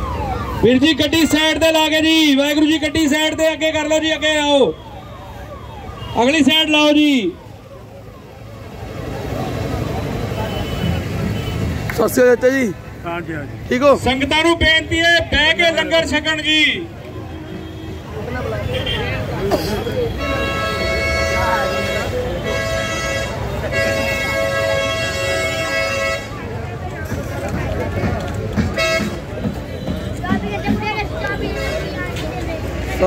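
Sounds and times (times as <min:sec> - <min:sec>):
crowd chatter: 0:00.0 - 0:33.0
faint voices: 0:00.0 - 0:33.0
vehicle horn blasts: 0:20.0 - 0:26.4, 0:28.8 - 0:29.2.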